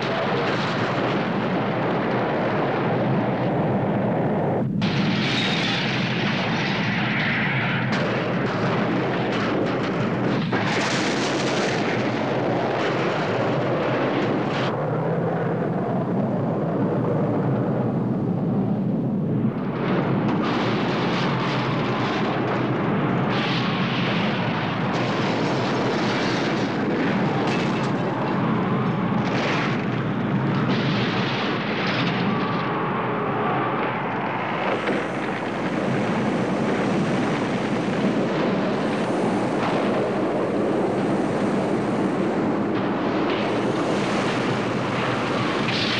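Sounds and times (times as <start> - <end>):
blast wind rush and rumble: 0.0 - 45.9
debris crackling: 4.8 - 14.4, 19.7 - 45.9.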